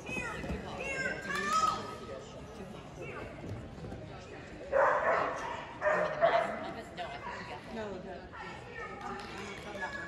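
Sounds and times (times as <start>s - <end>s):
dog barking in echoing hall: 4.7s - 6.6s.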